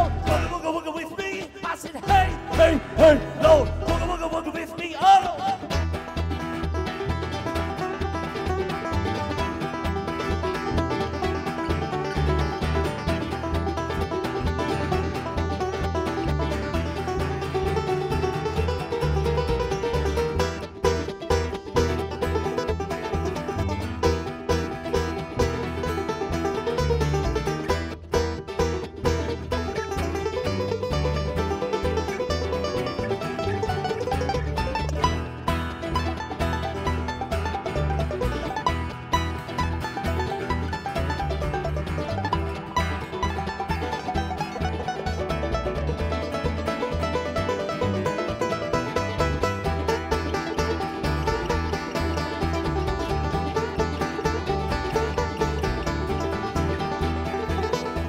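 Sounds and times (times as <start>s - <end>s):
acoustic guitar: 0.0s - 58.0s
banjo picking: 0.0s - 58.0s
mandolin: 0.0s - 58.0s.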